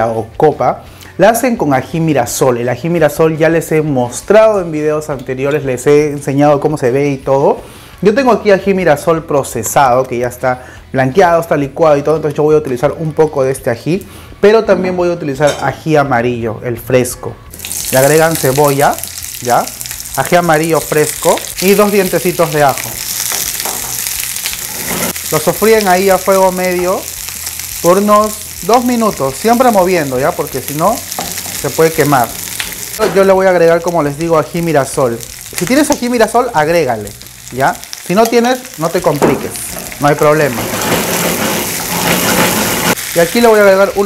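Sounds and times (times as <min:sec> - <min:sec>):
vegetables sizzling in a frying pan: 0:17.5 - 0:44.0
wooden spoon scraping a pan: 0:23.3 - 0:25.2, 0:39.7 - 0:43.0.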